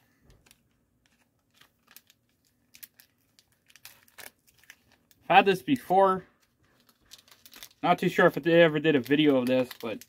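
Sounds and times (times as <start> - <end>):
plastic candy wrapper crinkling: 0.2 - 10.0.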